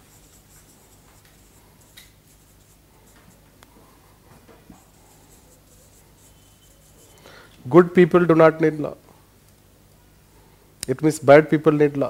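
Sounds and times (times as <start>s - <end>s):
marker scratching on whiteboard: 0.0s - 4.0s, 4.6s - 7.8s.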